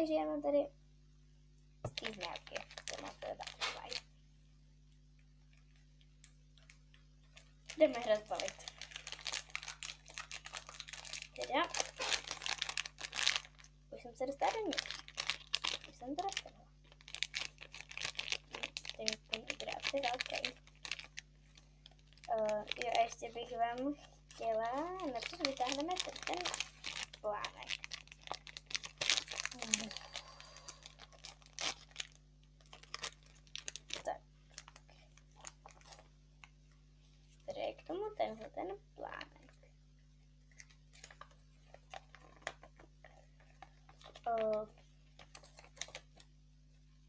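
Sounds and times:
plastic wrapper crinkling: 1.8s - 4.1s, 4.8s - 46.9s.

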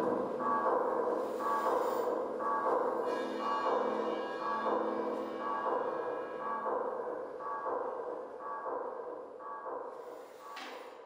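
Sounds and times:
pulsing sonar-like tone: 0.0s - 11.0s.

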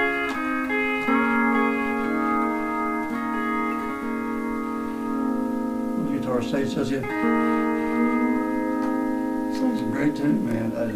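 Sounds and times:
pedal steel guitar chord ringing: 0.0s - 10.9s.

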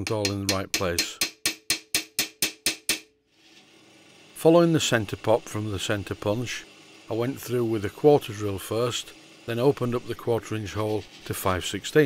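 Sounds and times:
hammer tapping metal punch: 0.0s - 3.1s.

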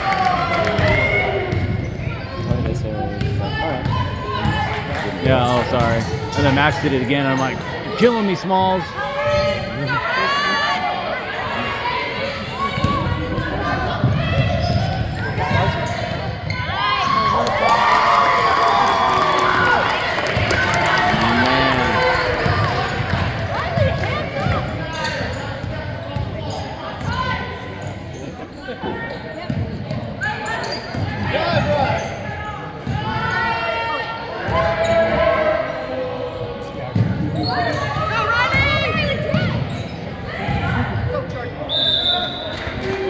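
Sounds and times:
voices and shouts: 3.1s - 25.4s, 37.4s - 43.0s.

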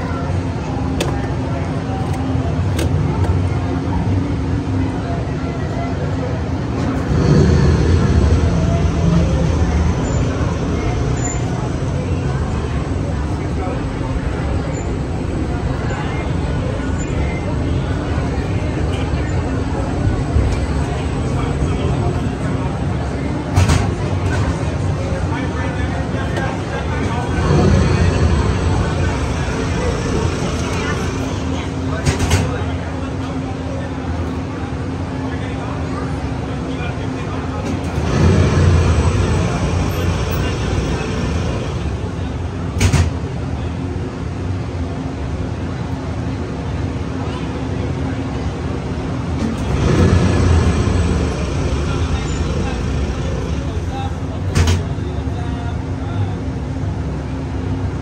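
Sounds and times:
indistinct voices: 0.0s - 58.0s
ride car low rumble: 0.0s - 58.0s.

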